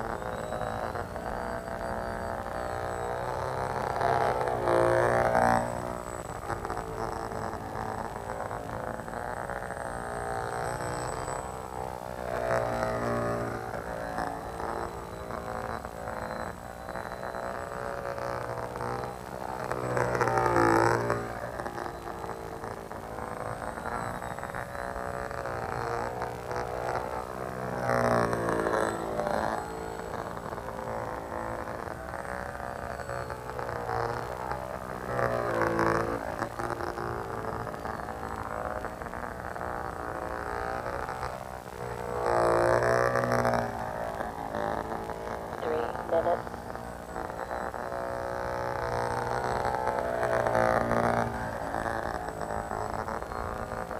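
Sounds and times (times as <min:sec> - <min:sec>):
model plane propeller droning: 0:00.0 - 0:53.9.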